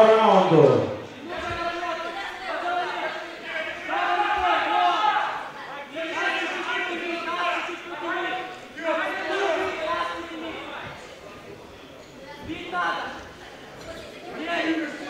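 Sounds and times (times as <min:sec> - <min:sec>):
men speaking: 0:00.0 - 0:13.3.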